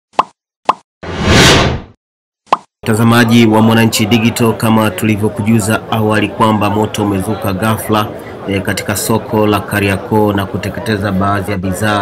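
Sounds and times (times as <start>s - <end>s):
whoosh: 1.0s - 2.0s.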